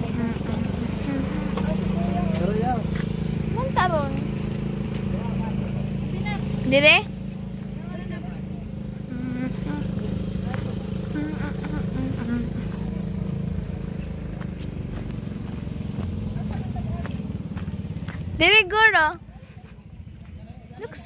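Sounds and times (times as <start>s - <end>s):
motorcycle engine running: 0.0s - 21.0s
tyres on gravel road: 0.0s - 21.0s.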